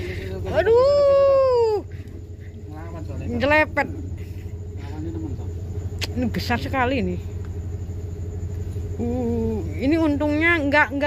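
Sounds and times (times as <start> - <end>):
engine low rumble: 0.0 - 11.0.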